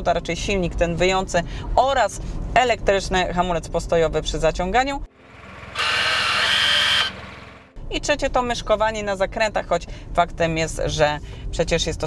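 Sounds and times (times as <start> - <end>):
electric parking brake motor whirring: 5.2 - 7.7.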